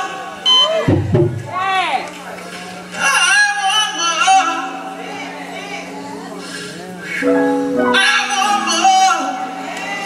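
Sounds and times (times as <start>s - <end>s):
low sustained tone: 4.6s - 9.7s.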